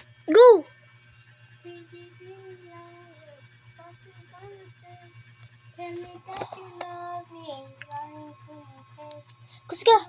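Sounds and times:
steady low hum: 0.0 - 10.0
child singing: 1.7 - 5.1, 5.8 - 10.0.

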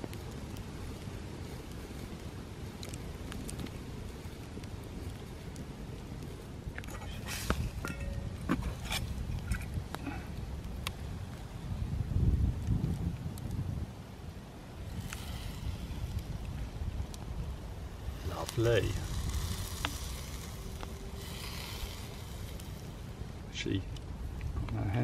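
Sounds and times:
campfire crackling: 0.0 - 25.0
fire popping and snapping: 0.0 - 25.0.

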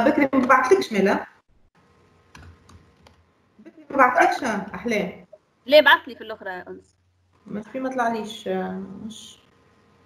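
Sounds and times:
keyboard keys tapping: 2.3 - 3.2.

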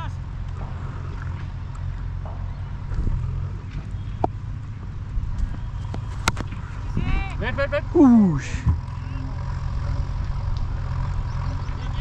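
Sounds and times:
wind rumble on microphone: 0.1 - 7.9.

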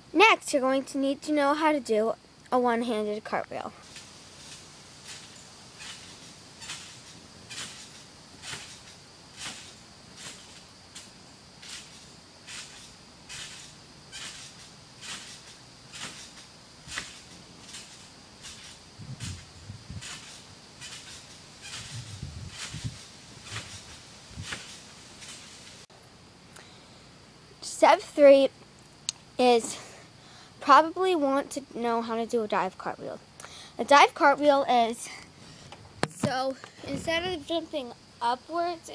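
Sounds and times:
insect buzzing and chirping: 0.0 - 38.9
dull low thumps: 18.9 - 20.3, 21.7 - 24.7.

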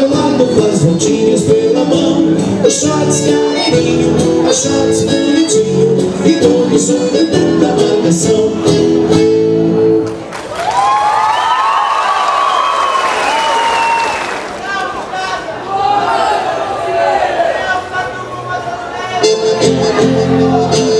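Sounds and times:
live band playing folk dance: 0.0 - 10.2, 19.2 - 20.9
audience cheering and applauding: 10.0 - 15.2
shouts and whistles: 10.8 - 14.4.

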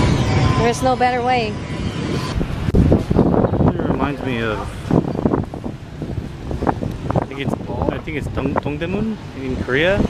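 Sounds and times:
outdoor street noise: 0.0 - 10.0
wind rumbling on microphone: 0.0 - 10.0.

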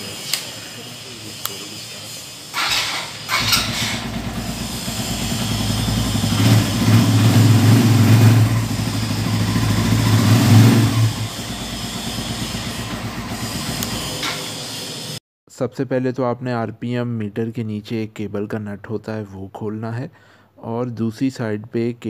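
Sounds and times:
motorcycle engine starting and revving: 2.5 - 15.2.

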